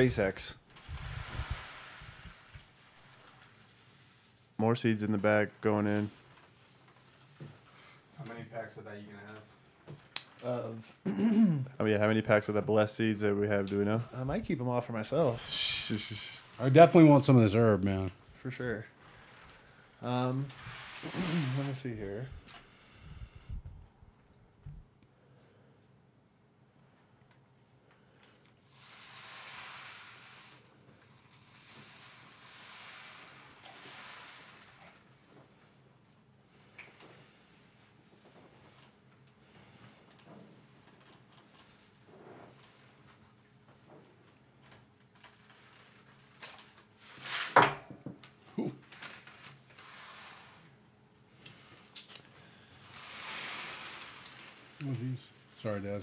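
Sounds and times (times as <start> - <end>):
seeds spilling: 0.0 - 6.3, 18.4 - 22.3, 31.3 - 35.1, 52.7 - 55.8
paper bag rustling: 0.7 - 4.6, 19.0 - 22.0, 48.6 - 50.6, 52.8 - 55.2
seeds and paper bags rattling: 19.0 - 22.3, 52.8 - 55.8.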